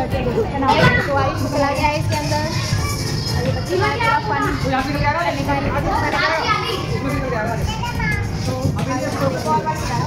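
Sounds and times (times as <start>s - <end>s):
children playing and calling out: 0.6s - 8.7s.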